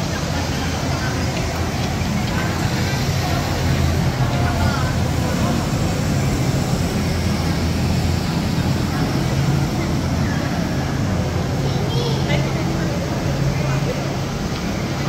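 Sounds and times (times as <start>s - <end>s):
blower fan humming: 0.0s - 15.0s
crowd chatter: 0.0s - 15.0s.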